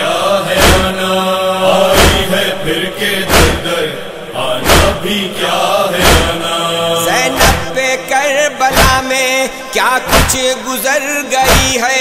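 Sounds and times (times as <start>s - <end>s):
person chanting a lament: 0.0s - 12.0s
rhythmic chest-beating thumps: 0.0s - 12.0s.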